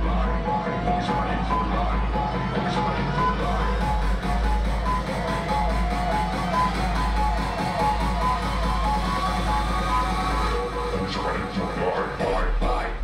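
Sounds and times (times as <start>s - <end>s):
loud dance music: 0.0s - 13.0s.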